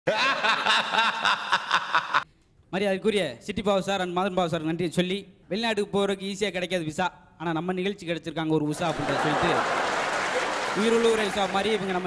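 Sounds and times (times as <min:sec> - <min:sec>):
recorded laughter bursts: 0:00.1 - 0:02.2.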